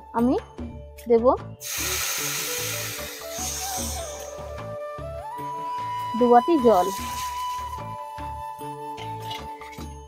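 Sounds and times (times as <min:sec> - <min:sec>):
background music: 0:00.0 - 0:10.0
water pouring onto sugar in a pan: 0:01.6 - 0:04.0, 0:06.8 - 0:07.8.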